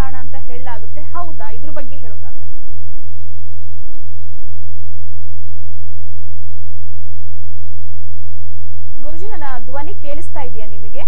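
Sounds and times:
electrical hum with whine: 0:00.0 - 0:03.3, 0:08.9 - 0:11.0.

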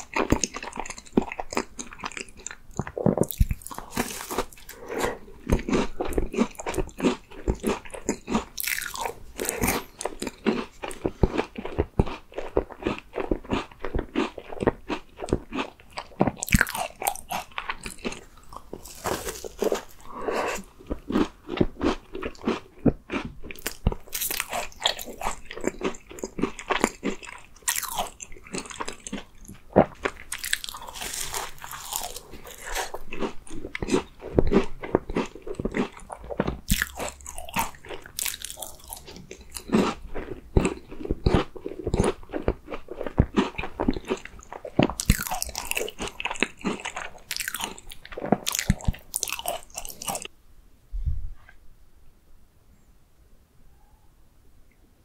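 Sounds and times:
crunching and chewing tart: 0:00.0 - 0:50.3.

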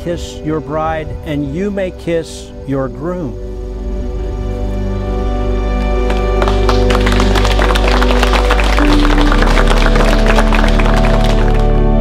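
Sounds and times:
slow music of sustained chords: 0:00.0 - 0:12.0
guests applauding: 0:06.0 - 0:12.0.

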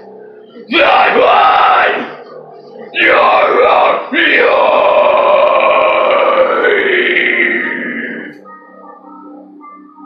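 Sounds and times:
harsh vocal scream: 0:00.7 - 0:02.2, 0:03.0 - 0:08.4
loud metal backing track: 0:03.0 - 0:08.4.

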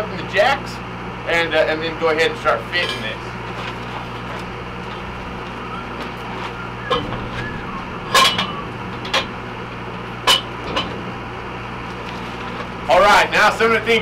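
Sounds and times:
low engine hum: 0:03.2 - 0:13.0
metal pipe clanking: 0:04.6 - 0:12.6.

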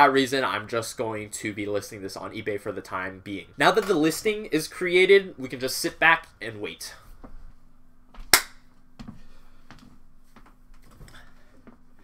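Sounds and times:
sharp hand clap: 0:08.3 - 0:08.6.

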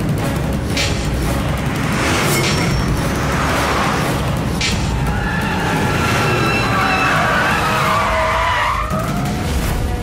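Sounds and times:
car engines rumbling: 0:00.0 - 0:10.0.

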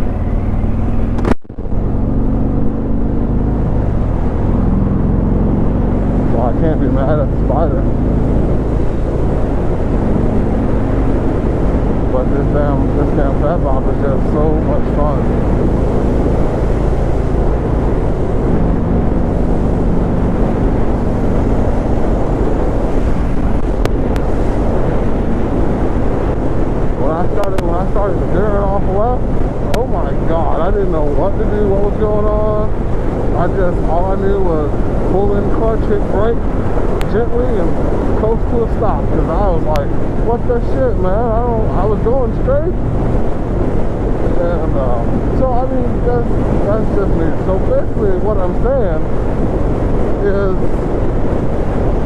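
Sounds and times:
motorcycle engine cruising: 0:00.0 - 0:52.0
wind noise on microphone: 0:00.0 - 0:52.0.

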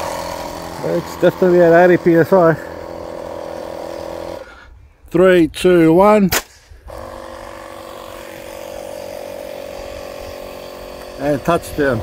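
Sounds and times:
air compressor motor humming: 0:00.0 - 0:04.7, 0:06.9 - 0:12.0.

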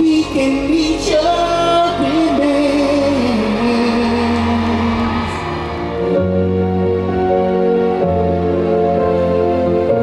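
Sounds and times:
man singing: 0:00.0 - 0:05.6
band sustained chords: 0:00.1 - 0:10.0.

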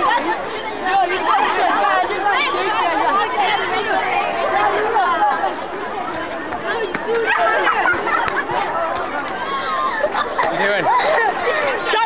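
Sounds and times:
girls chattering and shrieking: 0:00.0 - 0:12.0.

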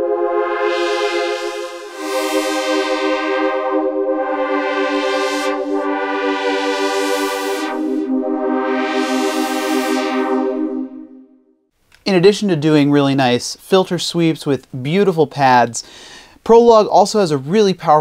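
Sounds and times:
synthesizer pad chords with filter sweep: 0:00.0 - 0:11.6.

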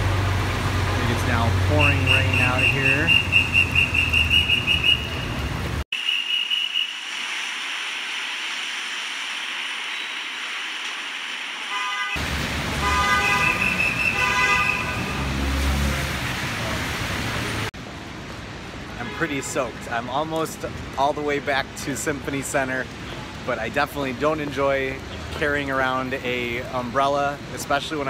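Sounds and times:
heavy rain on wet street: 0:00.0 - 0:03.1, 0:07.0 - 0:28.0
traffic: 0:00.0 - 0:28.0
car horns honking: 0:01.7 - 0:06.7, 0:11.7 - 0:12.2, 0:12.8 - 0:15.6.

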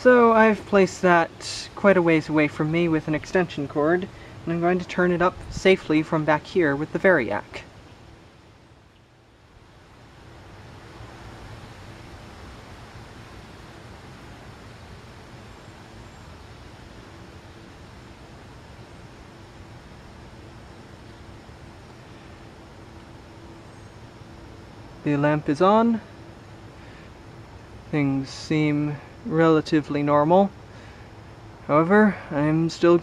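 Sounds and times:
faint low electrical hum: 0:00.0 - 0:33.0
outdoor background noise: 0:00.0 - 0:33.0.

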